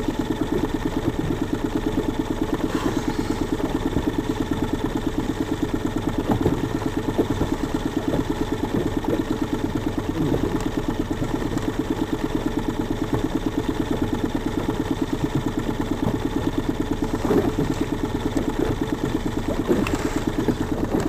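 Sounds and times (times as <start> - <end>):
small outboard motor running: 0.0 - 21.0.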